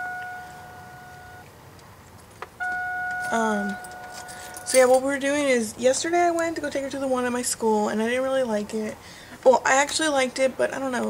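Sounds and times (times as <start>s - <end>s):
high electronic tone: 0.0s - 1.4s
faint background noise: 0.0s - 11.0s.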